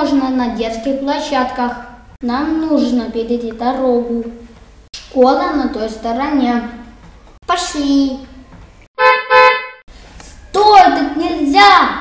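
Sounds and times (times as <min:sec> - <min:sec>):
car horn beeps: 0:09.0 - 0:09.8.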